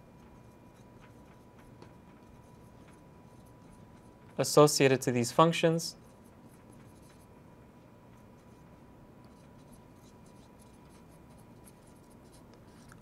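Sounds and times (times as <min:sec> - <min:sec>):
marker writing on glass: 0:09.3 - 0:12.9.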